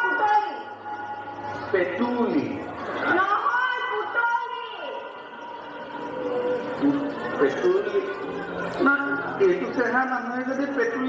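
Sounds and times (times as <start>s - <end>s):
faint steady tones: 0.0s - 10.8s.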